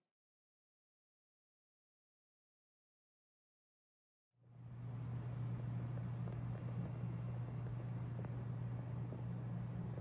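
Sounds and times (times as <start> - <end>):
steady low hum: 4.4 - 10.0.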